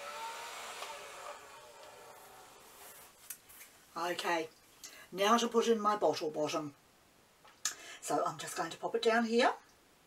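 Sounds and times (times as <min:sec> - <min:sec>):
toy leaf blower whirring: 0:00.0 - 0:03.0.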